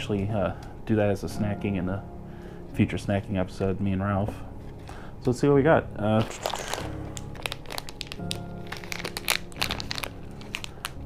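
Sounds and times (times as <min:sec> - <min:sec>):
background music with held tones: 0:00.0 - 0:11.0
plastic wrappers crinkling: 0:06.0 - 0:11.0.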